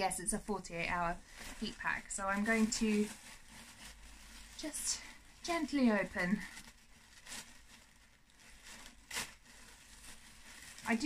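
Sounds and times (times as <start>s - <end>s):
plastic packaging rustling and tearing: 0.0s - 11.0s.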